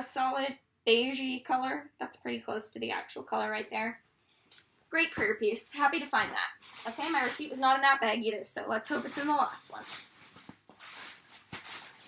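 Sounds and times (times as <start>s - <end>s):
plastic bag rustling: 6.5s - 7.7s, 8.9s - 12.0s.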